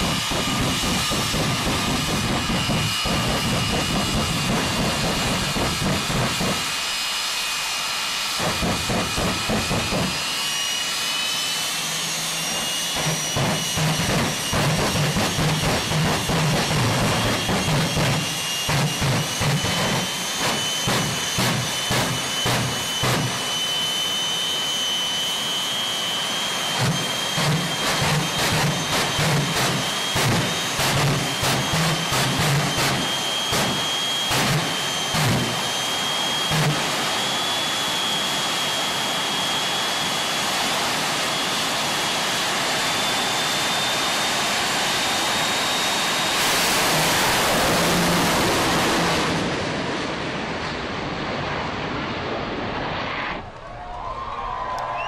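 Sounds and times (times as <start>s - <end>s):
drag racing engine running: 0.0s - 53.4s
high engine whine: 0.0s - 55.0s.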